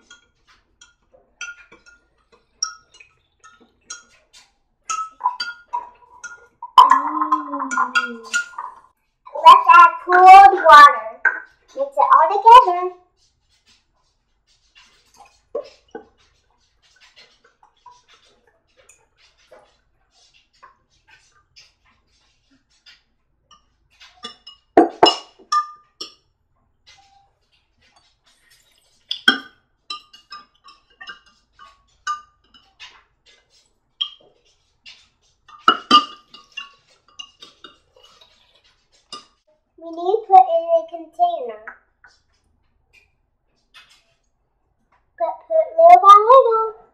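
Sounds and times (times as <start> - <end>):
spoon clinking on glass: 0.0 - 4.2, 4.9 - 8.8, 23.5 - 26.2, 28.5 - 33.0, 34.0 - 34.2, 34.9 - 39.4
metal spoon stirring in glass jug: 0.0 - 39.5.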